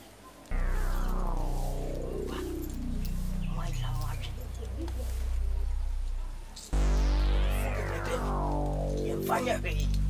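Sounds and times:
low bass drone: 0.5 - 10.0
synthesizer tone sliding down: 0.5 - 10.0.

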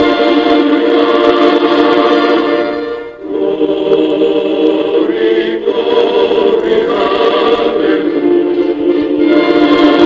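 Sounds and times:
choir holding sustained chords: 0.0 - 10.0.

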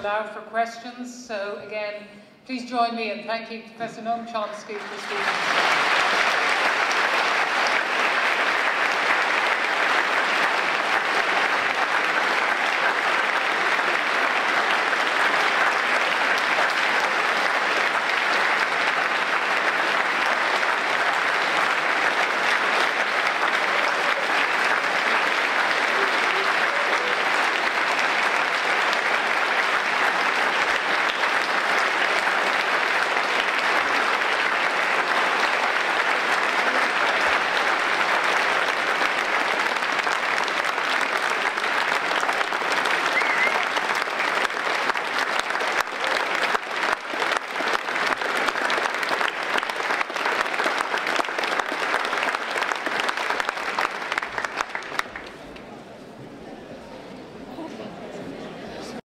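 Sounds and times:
audience applauding: 4.6 - 56.0.

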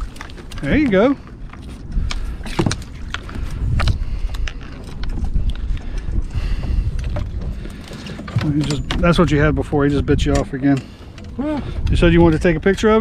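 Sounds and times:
wind rumble on microphone: 0.0 - 13.0
knocks and clatter of net on boat: 1.6 - 13.0.

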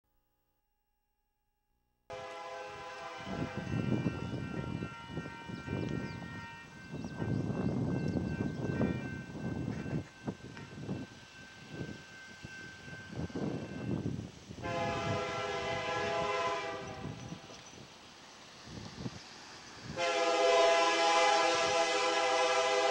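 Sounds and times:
distant locomotive air horn: 2.1 - 11.1, 14.6 - 17.5, 19.9 - 22.9.

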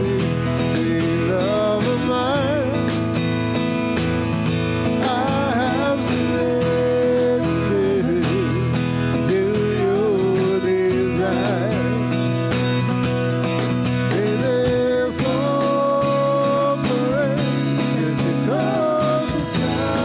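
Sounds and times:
acoustic guitar strumming: 0.0 - 20.0
voices singing: 14.1 - 20.0.

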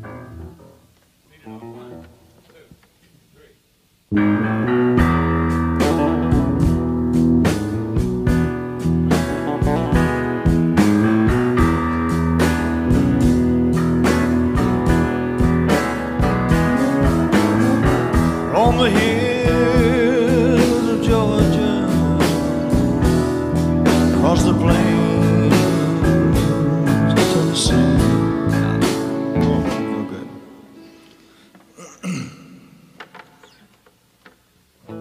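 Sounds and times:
electric guitar: 0.0 - 0.9, 4.1 - 31.2
bass guitar: 0.0 - 2.3, 4.1 - 30.4
steady drum beat: 5.8 - 29.8
person singing: 18.4 - 23.2, 24.0 - 30.5.

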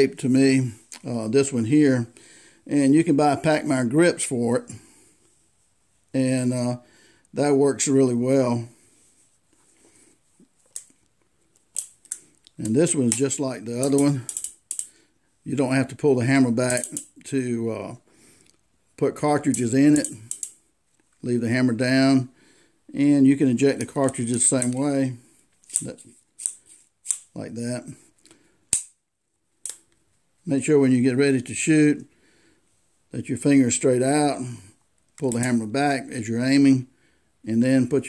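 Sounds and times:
revolver metallic clicks: 13.8 - 14.9, 16.7 - 17.2, 19.5 - 20.6.

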